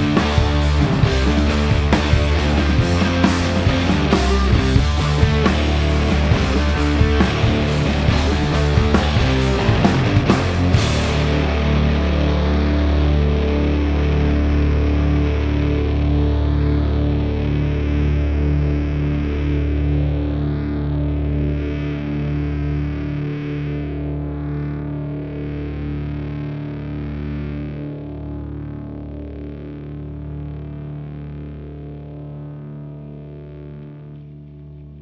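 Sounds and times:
deep low note: 0.0 - 21.7
distorted electric guitar: 0.0 - 35.0.

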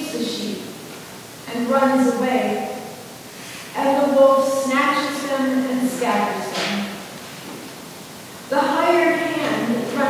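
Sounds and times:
person reading aloud: 0.0 - 0.8, 1.5 - 3.0, 3.6 - 7.1, 8.5 - 10.0
room hiss: 0.0 - 10.0.

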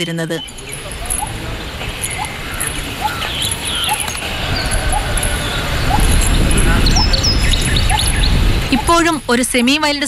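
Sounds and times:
low rumble: 4.1 - 9.0.

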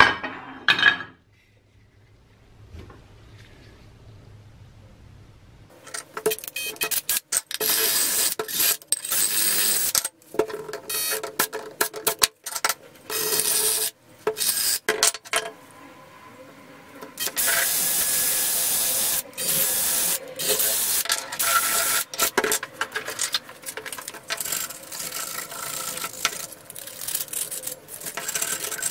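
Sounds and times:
drill with wire wheel brushing metal: 7.1 - 10.0, 13.1 - 14.9, 17.2 - 28.9.

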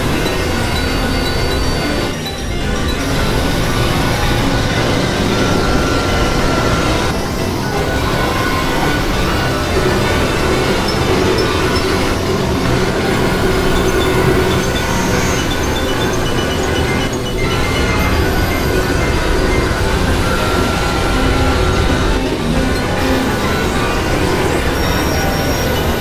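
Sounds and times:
noisy synthesizer drone: 0.0 - 26.0
thin held synth tones: 0.0 - 26.0.

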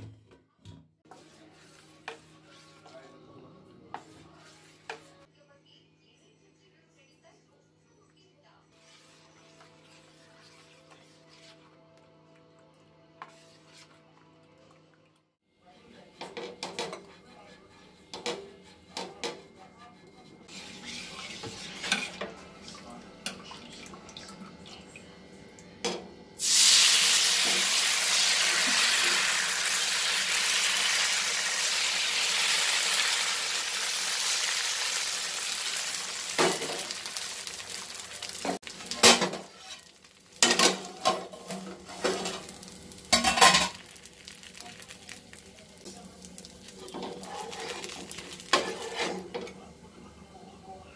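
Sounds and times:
batter sizzling on hot pan: 8.8 - 11.8, 26.4 - 49.5
utensils clinking against pan: 38.3 - 42.5, 43.1 - 44.7, 46.7 - 49.6.

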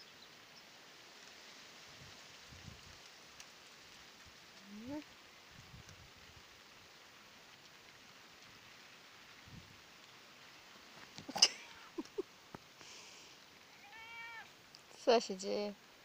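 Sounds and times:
cat meowing: 13.7 - 14.5.

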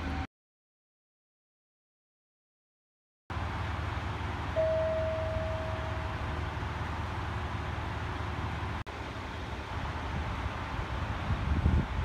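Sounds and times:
diesel engine idling: 3.3 - 11.5
single clear tone: 4.6 - 6.1.

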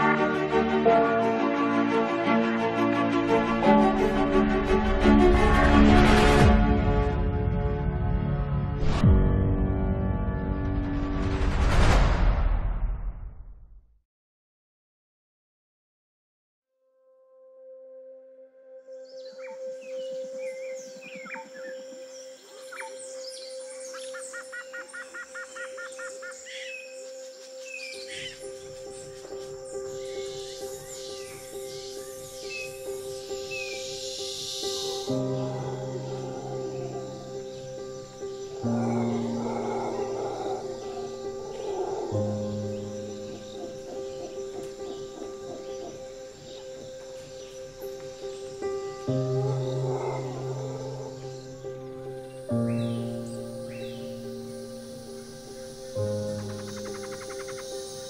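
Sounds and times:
sad piano and violin music: 0.0 - 10.9, 17.0 - 58.0
birds chirping and trilling: 18.9 - 58.0.

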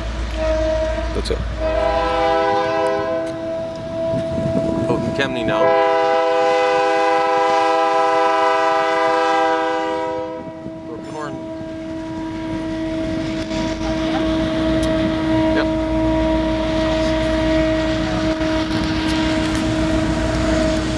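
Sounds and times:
locomotive air horn: 0.0 - 4.8, 5.4 - 20.9
diesel engines rumbling: 0.0 - 20.9.

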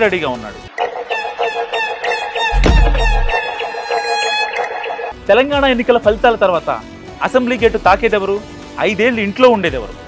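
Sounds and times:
rapid clucking bird calls: 0.7 - 5.2
deep boom: 2.5 - 3.4.

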